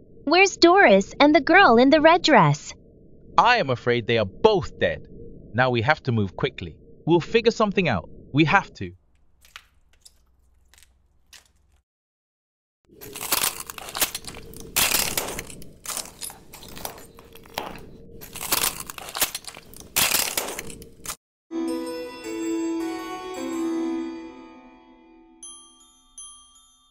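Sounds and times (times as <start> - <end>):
fire crackling: 8.9 - 11.8, 12.9 - 21.2
slow chiming music: 21.5 - 26.9.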